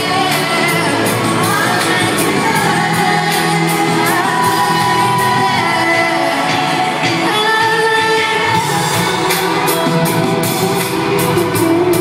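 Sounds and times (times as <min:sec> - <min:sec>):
live pop band with drum beat: 0:00.0 - 0:12.0.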